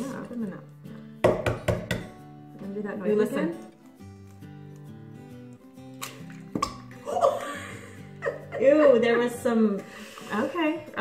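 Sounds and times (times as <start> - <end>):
soft background music: 0.0 - 11.0
woman laughing: 6.9 - 9.3.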